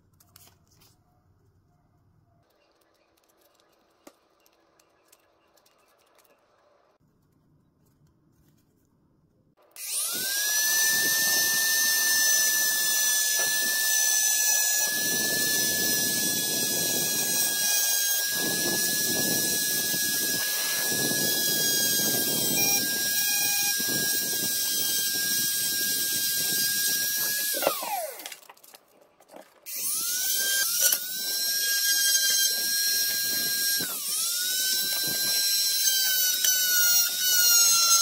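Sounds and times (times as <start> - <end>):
rotary tool high whine: 9.6 - 28.7, 29.7 - 38.0.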